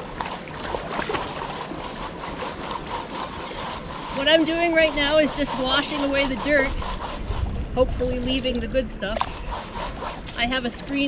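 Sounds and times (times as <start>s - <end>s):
water sloshing and splashing: 0.0s - 11.0s.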